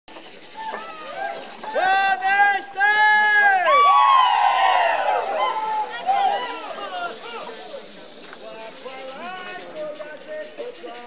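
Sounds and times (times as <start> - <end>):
crowd chatter: 0.1 - 11.0
voices crying out: 0.4 - 11.0.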